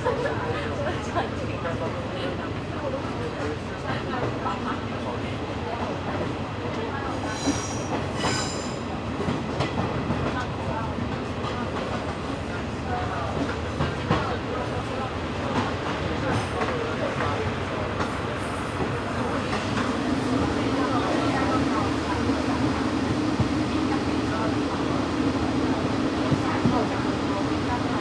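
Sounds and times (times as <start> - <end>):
train coach rumbling on track: 0.0 - 28.0.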